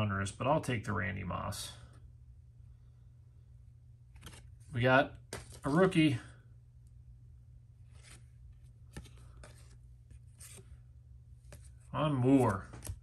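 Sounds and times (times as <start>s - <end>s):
low steady hum: 0.0s - 13.0s
cards scraping together: 7.9s - 10.8s.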